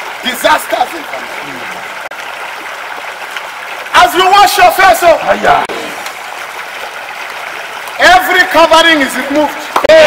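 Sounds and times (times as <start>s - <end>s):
running water rushing: 0.0s - 10.0s.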